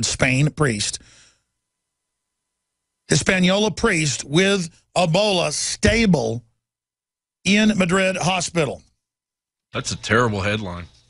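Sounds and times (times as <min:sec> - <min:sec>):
faint breath of air: 0:01.0 - 0:01.6.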